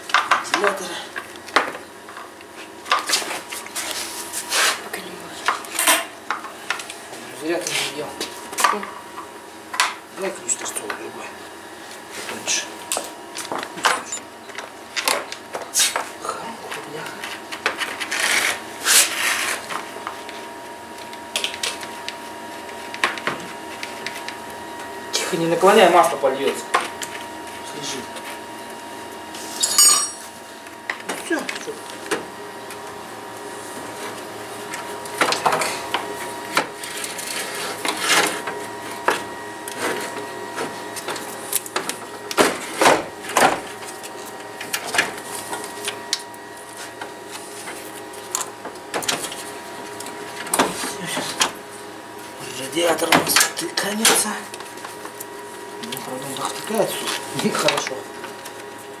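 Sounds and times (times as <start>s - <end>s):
steady background hum: 0.0s - 59.0s.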